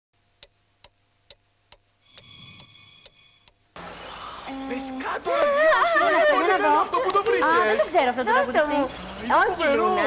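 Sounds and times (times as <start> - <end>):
room noise: 0.2 - 10.0
clock-like ticking: 0.4 - 3.6
sustained ringing chime tone: 2.3 - 3.5.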